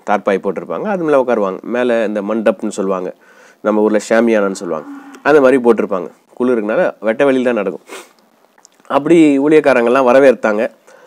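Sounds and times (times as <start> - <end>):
man talking: 0.0 - 7.8.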